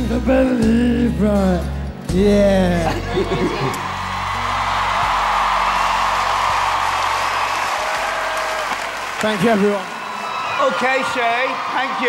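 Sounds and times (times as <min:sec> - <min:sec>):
audience applauding and cheering: 0:03.3 - 0:12.0.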